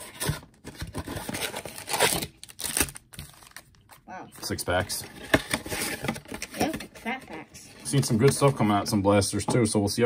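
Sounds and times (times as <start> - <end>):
cardboard box tearing: 0.0 - 3.0
foil packs crinkling: 0.8 - 3.8.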